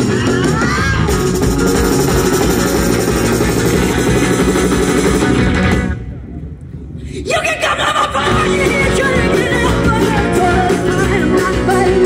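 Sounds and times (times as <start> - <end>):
rock band playing live: 0.0 - 6.1, 8.2 - 12.0.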